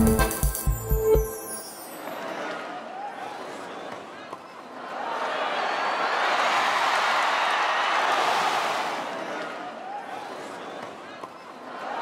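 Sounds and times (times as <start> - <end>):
stadium crowd reacting: 2.2 - 12.0.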